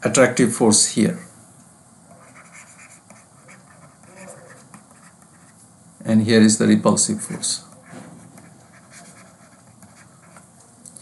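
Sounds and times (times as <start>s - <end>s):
stylus scratching on screen: 2.1s - 5.6s, 7.2s - 10.5s.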